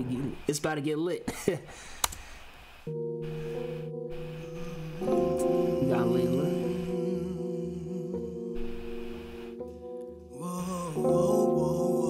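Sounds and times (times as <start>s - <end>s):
held keyboard chords: 2.9s - 12.0s
woman singing: 5.1s - 8.4s.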